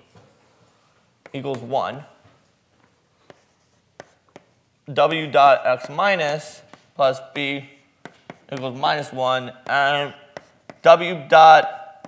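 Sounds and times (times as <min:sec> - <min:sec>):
chalk tapping and scraping: 0:00.0 - 0:02.2, 0:03.2 - 0:04.6, 0:05.4 - 0:11.2.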